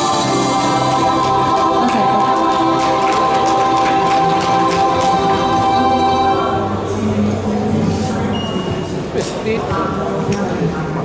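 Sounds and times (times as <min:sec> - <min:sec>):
pop song with held chords: 0:00.0 - 0:06.6
choir-like voices: 0:00.0 - 0:08.3.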